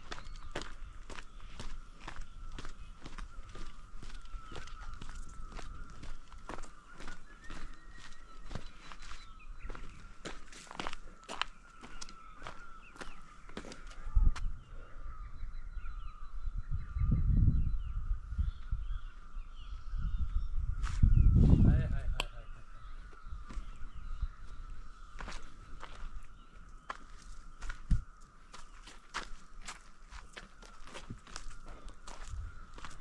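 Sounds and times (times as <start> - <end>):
wind buffeting microphone: 0.0 - 11.4, 12.1 - 29.9, 30.8 - 33.0
footsteps on dirt trail: 0.0 - 14.5, 22.8 - 33.0
birds chirping: 0.0 - 33.0.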